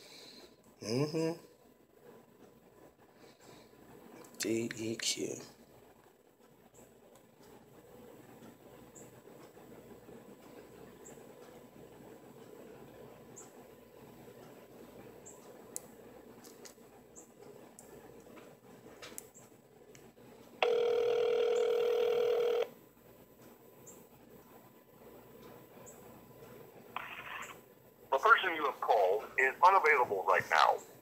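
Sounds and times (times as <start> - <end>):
phone line hiss: 20.6 - 22.7
phone ringback tone: 20.6 - 22.7.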